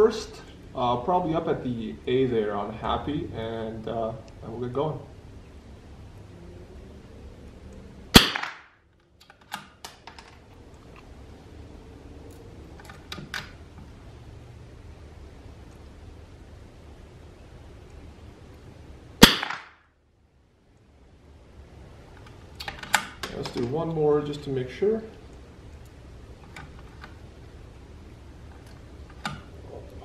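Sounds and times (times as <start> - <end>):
rifle shots: 8.1 - 8.8, 19.2 - 19.8.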